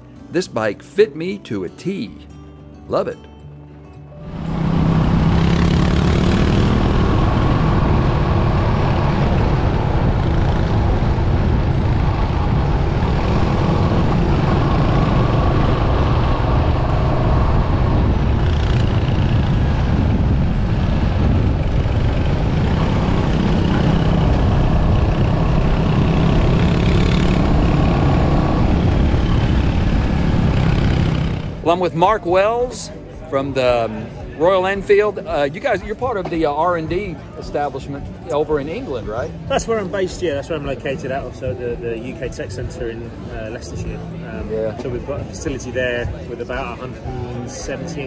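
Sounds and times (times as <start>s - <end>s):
wind and road noise: 4.1s - 48.0s
motorcycle engines running: 4.2s - 48.0s.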